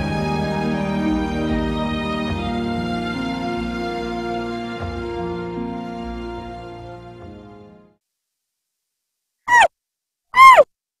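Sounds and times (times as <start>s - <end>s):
high-pitched falling calls: 9.5s - 9.7s, 10.4s - 10.6s.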